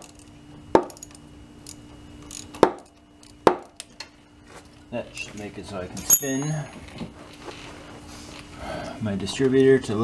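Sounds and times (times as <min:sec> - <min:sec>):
wrench clinking against metal clamp: 0:00.9 - 0:03.8, 0:05.1 - 0:06.8.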